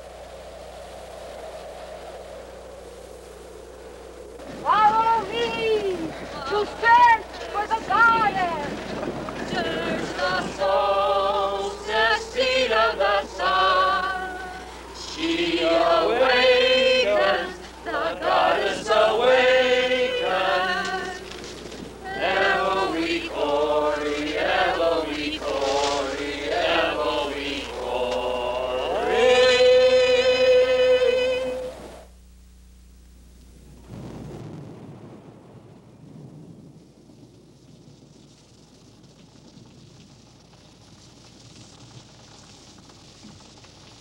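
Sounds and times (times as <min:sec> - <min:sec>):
long wavering call: 0:00.0 - 0:32.1
rushing noise: 0:00.0 - 0:32.1
group of voices chanting: 0:09.3 - 0:21.2, 0:22.0 - 0:31.7.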